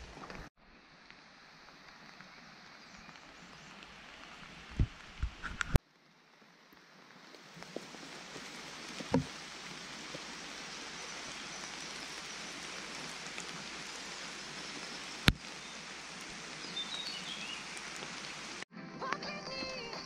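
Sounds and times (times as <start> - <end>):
steady rain falling: 0.0 - 18.7
music: 18.7 - 20.0.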